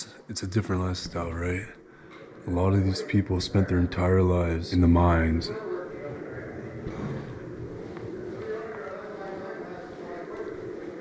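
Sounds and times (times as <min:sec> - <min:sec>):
distant voices murmuring: 0:00.0 - 0:11.0
low room noise rumble: 0:00.0 - 0:11.0.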